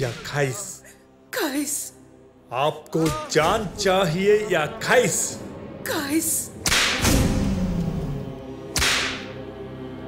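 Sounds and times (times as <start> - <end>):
whip-lash sound effect: 6.6 - 7.4, 8.7 - 9.4.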